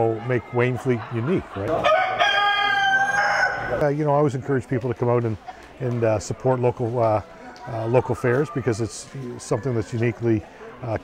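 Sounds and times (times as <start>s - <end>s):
rooster crowing: 1.8s - 3.8s.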